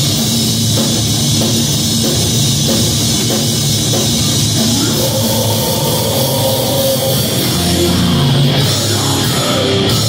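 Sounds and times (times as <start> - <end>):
distorted electric guitars: 0.0 - 10.0.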